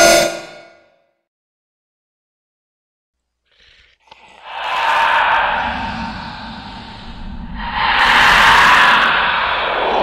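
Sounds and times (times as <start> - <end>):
metallic ringing hit: 0.0 - 0.9.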